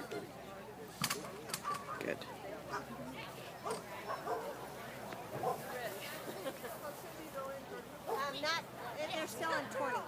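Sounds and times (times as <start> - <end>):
dog barking: 3.6 - 4.6, 5.4 - 5.6.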